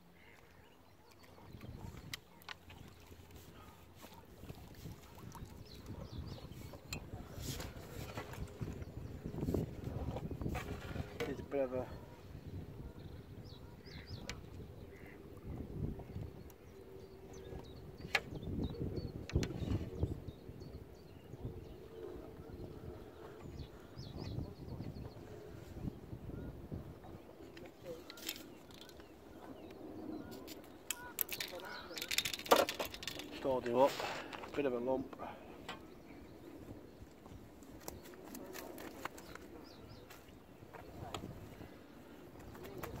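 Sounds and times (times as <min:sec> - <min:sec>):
wind buffeting microphone: 0:01.4 - 0:02.2, 0:02.8 - 0:34.4, 0:35.8 - 0:43.0
clicks and knocks of tackle: 0:30.4 - 0:34.6.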